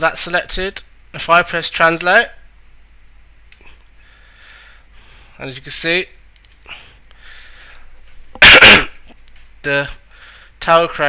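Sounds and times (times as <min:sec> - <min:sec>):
faint breath in: 0:03.6 - 0:05.4, 0:06.6 - 0:08.0, 0:10.1 - 0:10.6
man coughing: 0:08.4 - 0:09.2.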